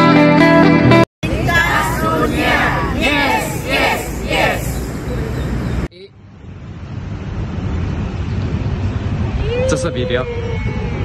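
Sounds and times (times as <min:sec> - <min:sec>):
wind rumbling on microphone: 0:06.7 - 0:11.0.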